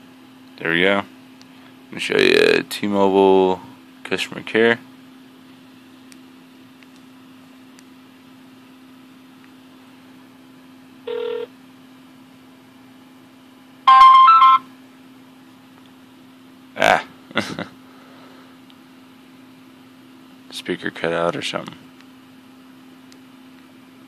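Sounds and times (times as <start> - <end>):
phone call tones: 11.1 - 11.5, 13.9 - 14.6.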